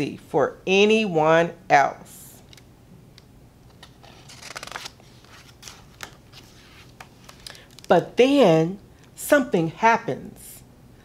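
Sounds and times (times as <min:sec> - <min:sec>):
book page rustling: 0:03.6 - 0:07.9.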